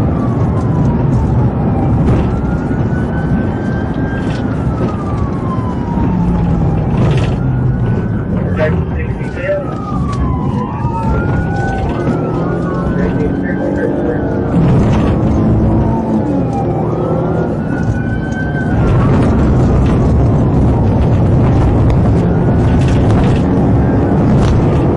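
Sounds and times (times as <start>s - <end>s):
police siren wailing: 0.0s - 24.9s
road and engine rumble: 0.0s - 24.9s.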